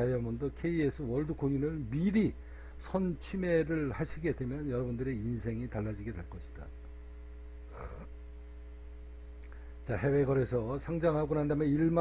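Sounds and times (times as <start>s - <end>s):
electrical mains hum: 0.0s - 12.0s
faint click: 9.4s - 9.7s.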